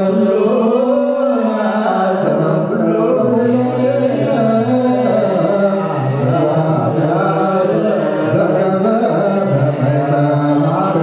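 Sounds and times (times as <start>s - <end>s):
men chanting slow prayer: 0.0s - 11.0s.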